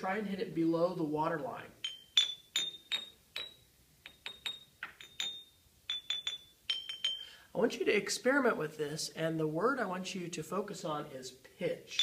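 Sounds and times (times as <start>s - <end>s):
mallet tapping glass jars: 1.8s - 7.4s.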